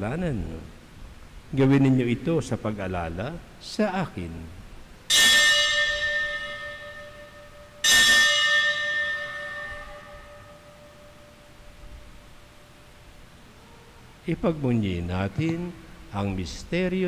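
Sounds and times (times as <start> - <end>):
altar bell ringing: 5.1 - 13.0.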